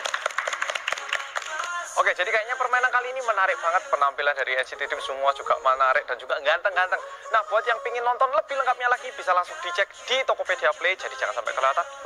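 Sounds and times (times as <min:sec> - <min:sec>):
group clapping hands: 0:00.0 - 0:02.0.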